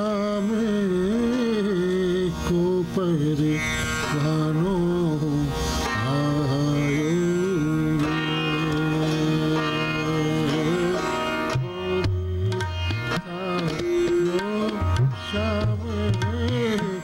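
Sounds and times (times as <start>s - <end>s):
sarangi melody: 0.0s - 17.0s
tanpura drone: 0.0s - 17.0s.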